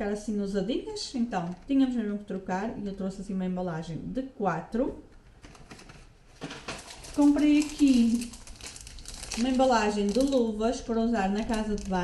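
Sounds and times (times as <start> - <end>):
plastic packaging rustling: 5.3 - 12.0.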